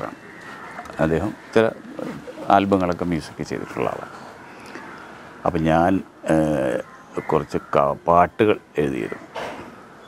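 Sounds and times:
man speaking: 0.9s - 4.2s, 5.4s - 9.3s.

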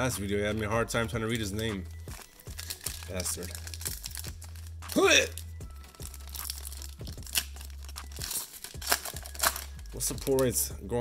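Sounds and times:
foil wrapper tearing and crinkling: 2.0s - 10.5s.

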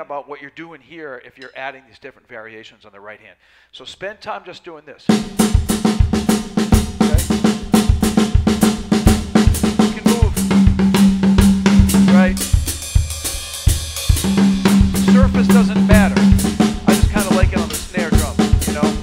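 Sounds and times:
drum kit groove: 5.1s - 19.0s.

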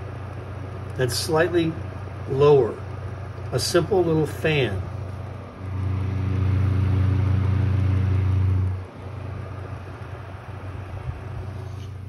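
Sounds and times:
desk fan motor humming: 0.0s - 12.0s.

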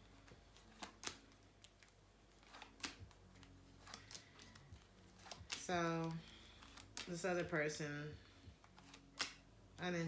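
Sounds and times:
faint background music: 0.0s - 10.0s
tarot cards clicking: 0.2s - 7.5s, 8.6s - 9.5s.

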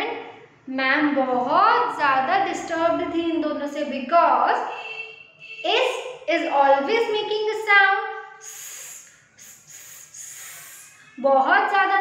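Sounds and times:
woman making hissing sounds: 8.4s - 11.1s.

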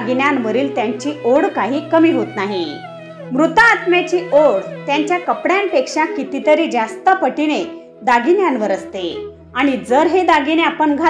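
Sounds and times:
background music with low drone: 0.0s - 11.0s.

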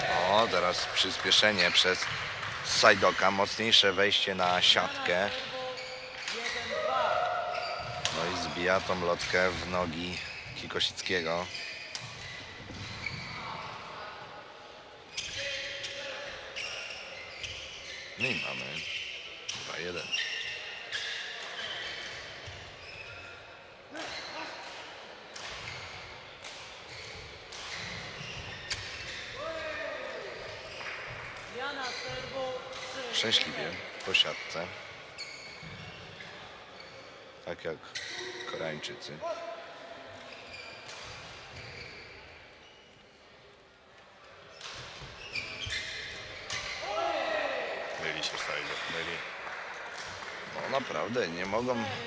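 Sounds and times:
sneaker squeaks: 0.0s - 14.1s, 15.1s - 39.5s, 40.1s - 43.2s, 44.5s - 49.1s.

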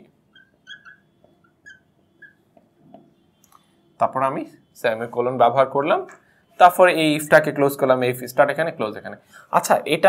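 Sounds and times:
marker squeaking on glass board: 0.0s - 3.2s.

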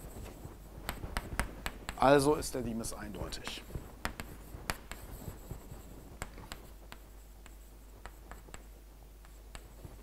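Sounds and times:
chalk tapping and scratching: 0.0s - 10.0s.

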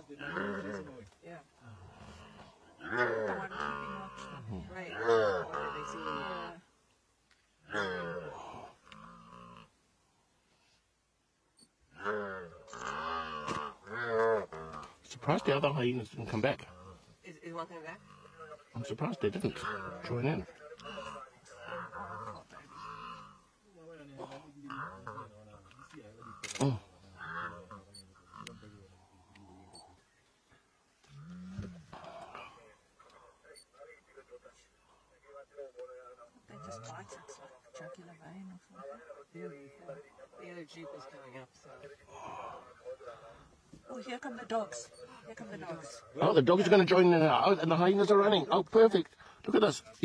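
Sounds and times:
hippo calf moaning distress calls: 0.1s - 1.0s, 1.6s - 6.6s, 7.6s - 9.8s, 11.9s - 15.8s, 16.6s - 17.1s, 17.7s - 18.9s, 19.5s - 23.6s, 24.2s - 30.0s, 31.0s - 32.6s.

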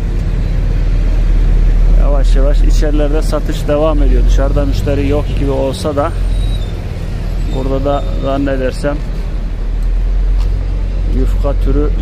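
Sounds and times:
street background rumble: 0.0s - 12.0s.

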